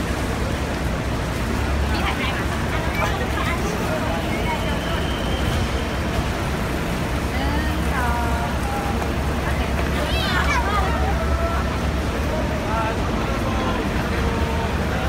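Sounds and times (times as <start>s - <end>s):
buses idling: 0.0s - 15.0s
passing traffic: 0.0s - 15.0s
people chatting: 0.0s - 15.0s.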